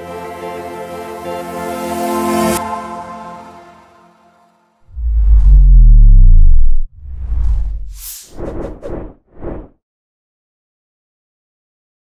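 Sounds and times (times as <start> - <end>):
synthesized bass hit sliding down: 4.9 - 8.0.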